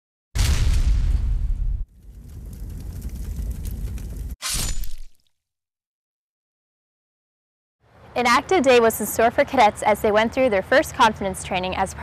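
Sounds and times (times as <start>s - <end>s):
loud impact with bass rumble: 0.4s - 4.4s.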